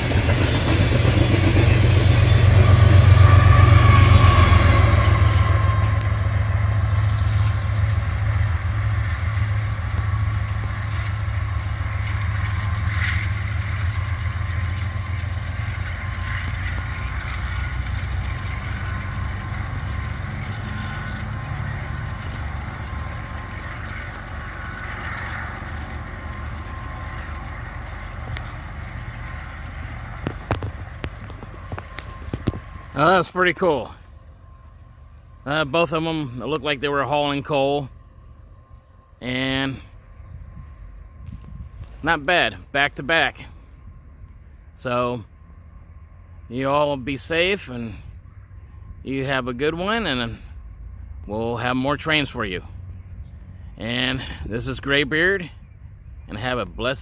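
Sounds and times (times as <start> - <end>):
train rumbling past on rails: 0.0 - 57.0.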